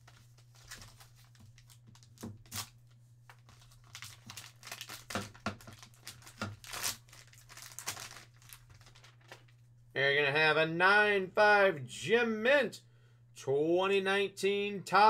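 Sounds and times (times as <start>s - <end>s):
plastic wrapping crinkling and tearing: 0.0s - 9.6s.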